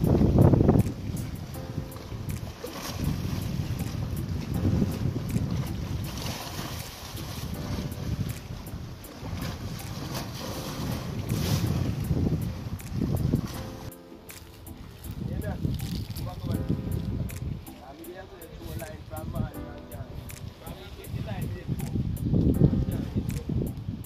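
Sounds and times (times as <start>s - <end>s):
sea water washing against rocks: 0.0s - 19.6s
wind buffeting microphone: 0.0s - 24.0s.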